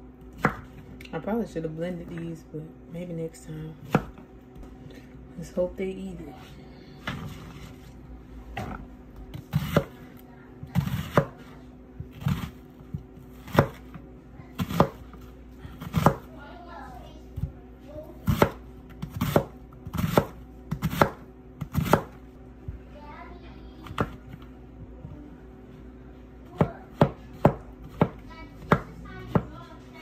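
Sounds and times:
knife chopping onion on board: 0.4s - 0.8s, 3.8s - 4.2s, 9.3s - 10.0s, 10.6s - 14.0s, 14.6s - 15.1s, 15.7s - 16.3s, 18.2s - 22.2s, 23.8s - 24.4s, 26.5s - 29.6s.

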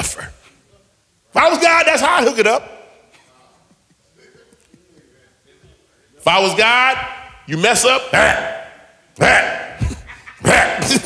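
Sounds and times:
man laughing heartily: 9.8s - 11.0s.

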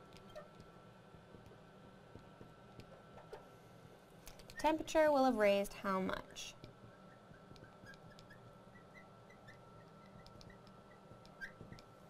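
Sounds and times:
faint room hum: 0.0s - 12.0s
marker squeaking on glass: 0.2s - 0.6s, 6.8s - 11.9s.

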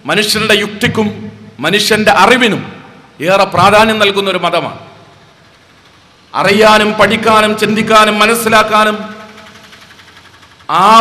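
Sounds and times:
man speaking with echo: 0.0s - 5.1s, 6.3s - 9.6s, 10.7s - 11.0s.

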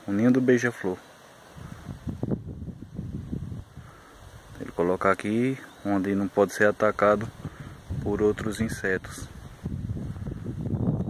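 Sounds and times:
wind buffeting microphone: 1.5s - 4.8s, 7.2s - 11.0s.

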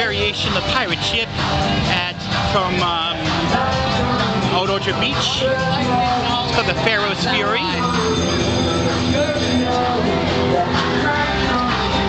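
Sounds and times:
crowd noise: 0.0s - 12.0s
fairground music: 0.0s - 12.0s.

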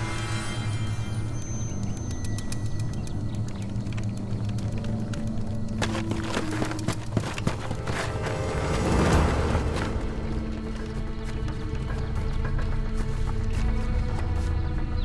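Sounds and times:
low drones: 0.0s - 15.0s
sharp percussive ticks: 1.6s - 5.8s.

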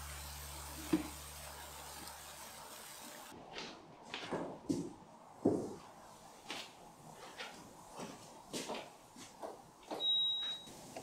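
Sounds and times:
high electronic beep: 10.0s - 10.7s.

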